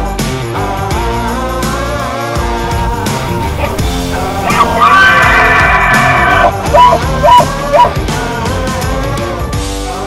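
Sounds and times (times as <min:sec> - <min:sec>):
rock music: 0:00.0 - 0:10.0
elk bugling: 0:02.7 - 0:08.0
elk chuckles: 0:03.4 - 0:07.9.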